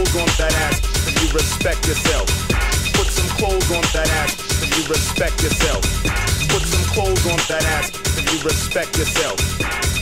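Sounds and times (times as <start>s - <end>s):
electronic dance music: 2.1s - 8.5s.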